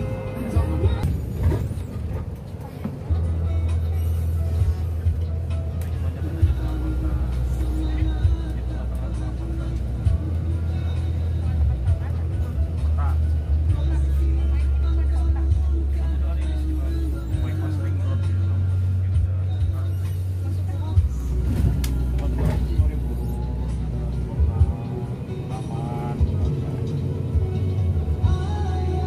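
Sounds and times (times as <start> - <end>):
music with voices: 0.0 - 1.1, 2.8 - 29.0
bus engine and road noise: 0.0 - 29.0.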